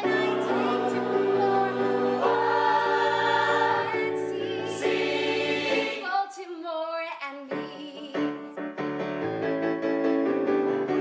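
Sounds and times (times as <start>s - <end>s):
choir singing held chords: 0.0s - 6.2s.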